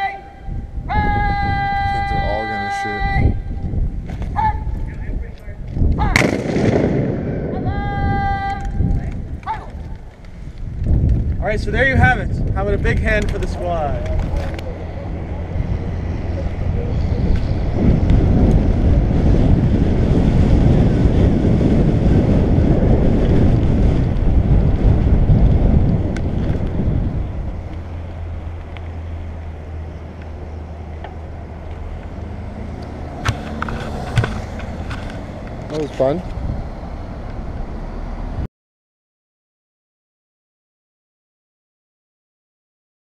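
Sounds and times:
wind buffeting microphone: 0:00.0 - 0:38.5
bicycle rolling across grass: 0:17.3 - 0:32.2.

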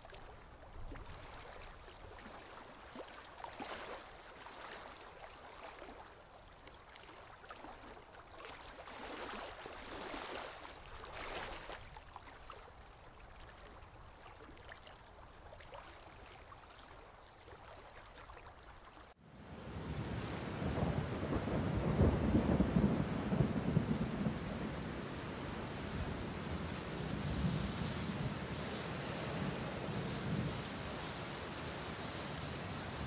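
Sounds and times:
steady rain: 0:19.4 - 0:33.0
low thunder rumble: 0:19.7 - 0:28.5.

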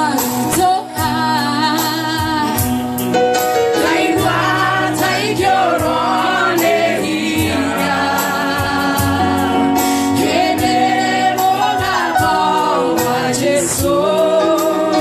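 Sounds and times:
instrumental backing: 0:00.0 - 0:15.0
gospel choir singing: 0:03.5 - 0:15.0.

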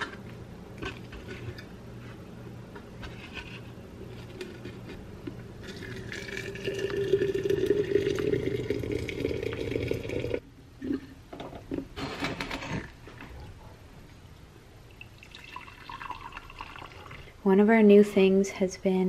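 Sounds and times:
hot water pouring into teapot: 0:05.7 - 0:10.4, 0:15.0 - 0:17.3
tea pouring into ceramic mug: 0:05.7 - 0:10.4, 0:15.1 - 0:17.2.

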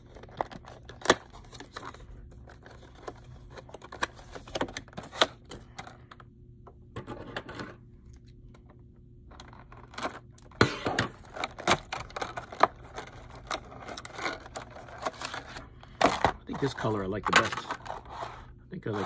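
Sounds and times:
plastic packaging crinkling: 0:09.5 - 0:18.1.

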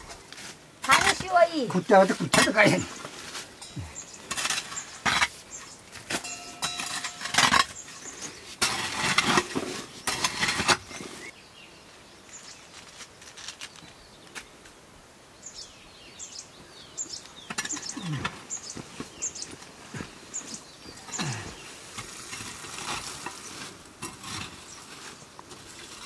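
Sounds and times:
hoe scraping through dung and earth: 0:00.0 - 0:11.3, 0:17.4 - 0:26.0
small birds chirping: 0:00.9 - 0:09.2, 0:09.8 - 0:14.6, 0:15.3 - 0:25.5.

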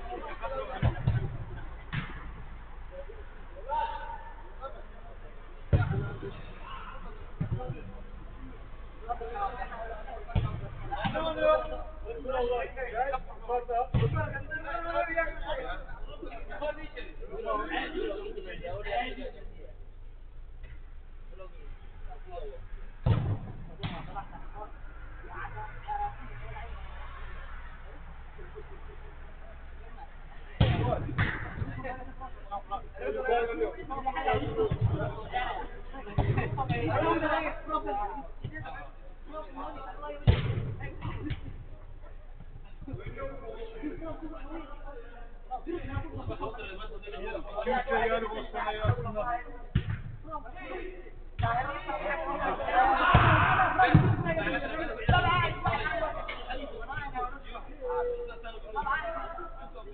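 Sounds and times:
thud: 0:00.8 - 0:02.5, 0:05.7 - 0:06.3, 0:07.4 - 0:07.9, 0:13.9 - 0:14.4, 0:23.0 - 0:24.2, 0:30.6 - 0:31.9, 0:40.2 - 0:41.6, 0:49.7 - 0:50.2, 0:53.1 - 0:54.4
football kicked hard: 0:49.7 - 0:50.2
players shouting: 0:51.5 - 0:56.2.

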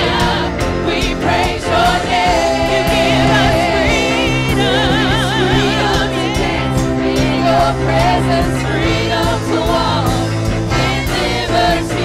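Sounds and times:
group of singers: 0:00.0 - 0:12.0
instrumental accompaniment with beat: 0:00.0 - 0:12.0.

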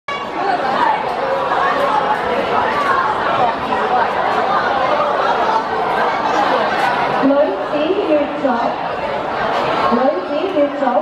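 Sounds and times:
crowd of young voices chattering: 0:00.1 - 0:11.0.

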